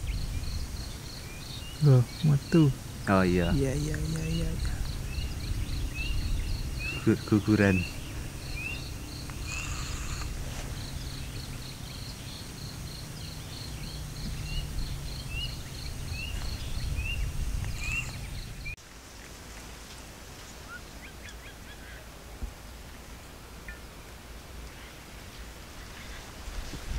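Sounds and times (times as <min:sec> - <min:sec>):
birds chirping: 0:00.0 - 0:18.8.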